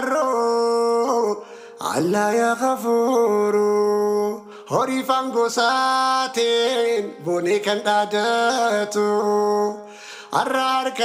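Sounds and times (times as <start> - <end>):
man singing: 0.0 - 11.0.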